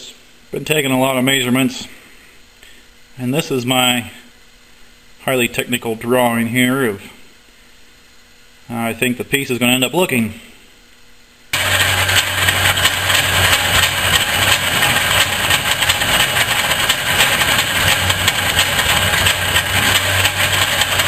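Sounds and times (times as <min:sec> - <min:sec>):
lathe motor hum: 0:11.6 - 0:21.0.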